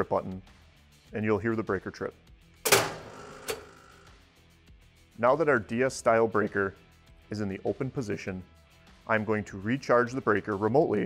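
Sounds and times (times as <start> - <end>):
circuit breaker clack: 2.7 - 4.0.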